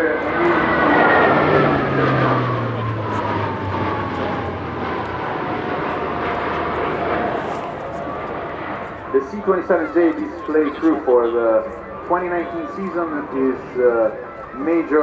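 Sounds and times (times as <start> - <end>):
turboprop aircraft passing low: 0.0 - 15.0.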